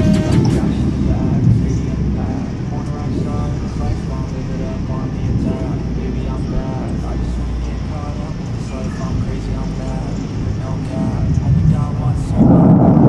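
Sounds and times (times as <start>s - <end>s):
person talking: 0.0s - 12.5s
wind rumble on microphone: 0.0s - 13.0s.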